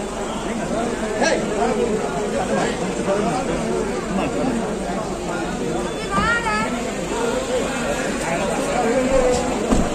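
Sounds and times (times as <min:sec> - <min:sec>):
overlapping crowd chatter: 0:00.0 - 0:09.9.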